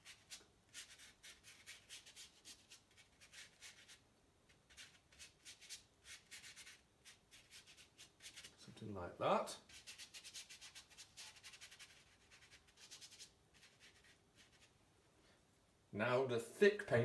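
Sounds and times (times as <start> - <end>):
paintbrush scratching on paper: 0.0 - 8.6, 9.6 - 14.8.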